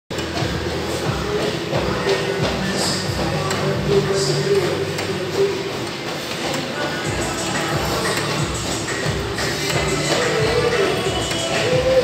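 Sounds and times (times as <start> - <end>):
background music: 0.1 - 12.0
footfalls on a treadmill: 0.1 - 12.0
machine hum: 0.1 - 12.0.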